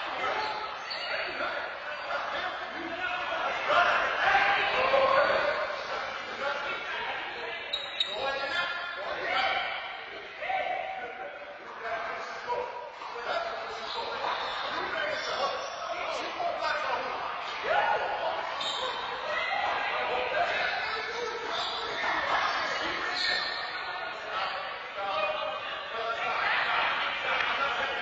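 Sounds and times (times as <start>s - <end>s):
players talking in echoing hall: 0.0s - 28.0s.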